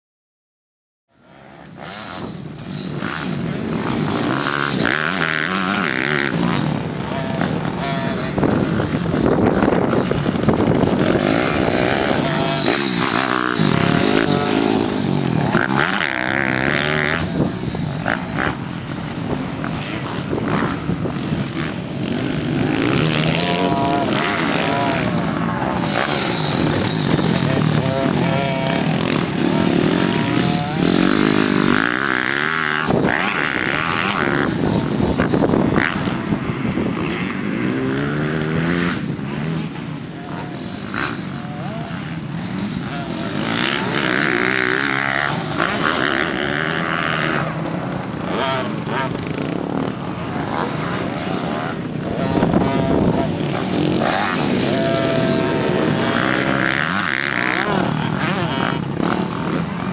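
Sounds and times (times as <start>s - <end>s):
motocross bike engine revving: 1.2s - 59.9s.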